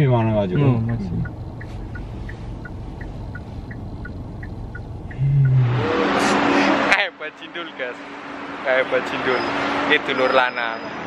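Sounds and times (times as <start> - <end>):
turn signal ticking: 0.0 - 6.0
car road and engine rumble: 0.0 - 11.0
whoosh transition effect: 5.1 - 6.9.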